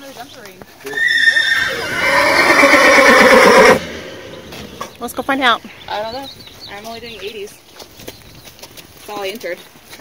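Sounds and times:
horse whinnying loudly: 0:00.9 - 0:04.8.

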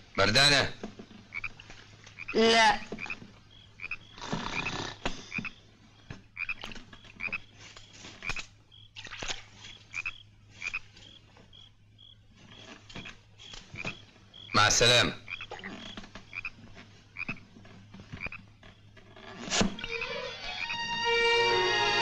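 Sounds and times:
frogs croaking: 0:00.0 - 0:21.9.

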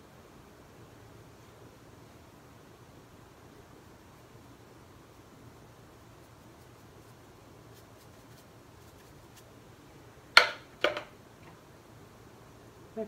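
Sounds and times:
paintbrush knocking on hard surface: 0:10.4 - 0:11.1.

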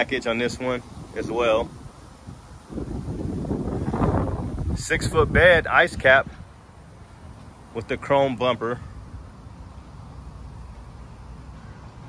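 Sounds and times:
wind buffeting microphone: 0:00.0 - 0:06.6.

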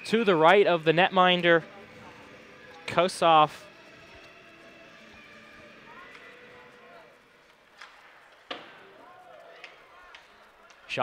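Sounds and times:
murmur of distant voices: 0:00.0 - 0:11.0
hockey sticks clacking on puck: 0:07.5 - 0:11.0.

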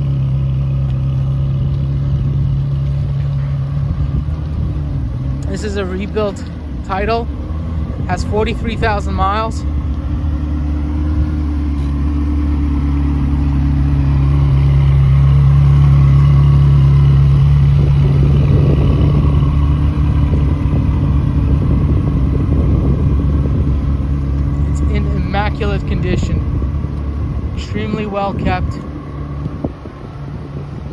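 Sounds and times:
car engine idling: 0:00.0 - 0:30.9.

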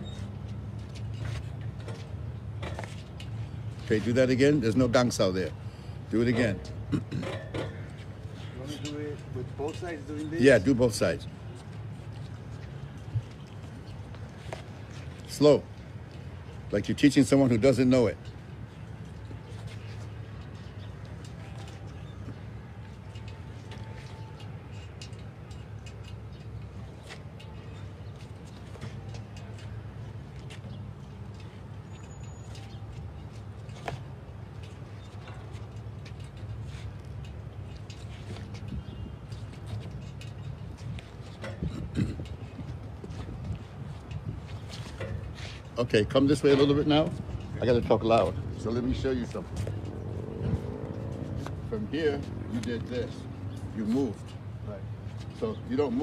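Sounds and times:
low rumble of road traffic: 0:00.0 - 0:56.0.

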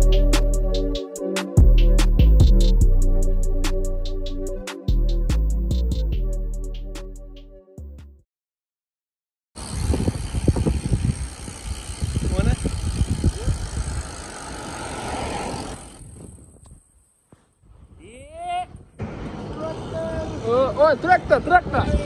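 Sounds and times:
wheels rolling on wet road: 0:09.6 - 0:16.1
wind rumbling on microphone: 0:09.6 - 0:20.5.

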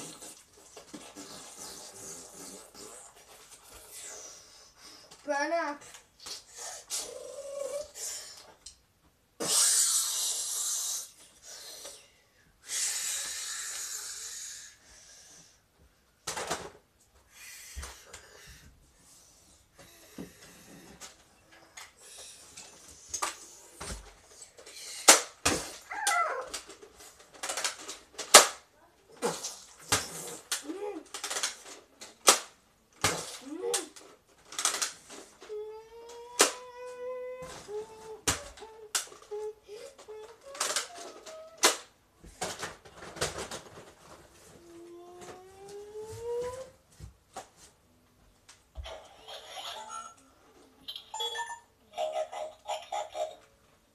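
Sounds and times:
toy blaster hiss: 0:09.4 - 0:11.1.

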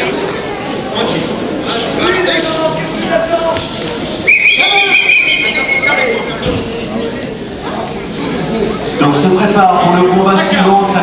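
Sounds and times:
crowd voices in a hall: 0:00.0 - 0:11.0
shrill signal tone: 0:04.3 - 0:06.4.

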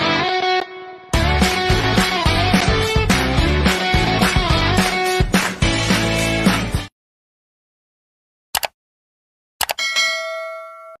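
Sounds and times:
double mouse click: 0:08.6 - 0:08.8
bell ding: 0:09.8 - 0:11.0.

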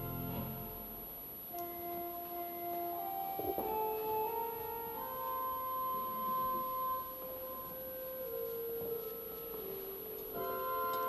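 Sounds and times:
soft church organ music: 0:00.0 - 0:11.0.

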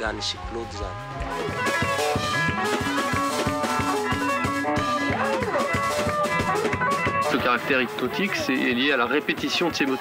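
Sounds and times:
electric guitars: 0:00.4 - 0:10.0
fast drum beat: 0:01.4 - 0:10.0.

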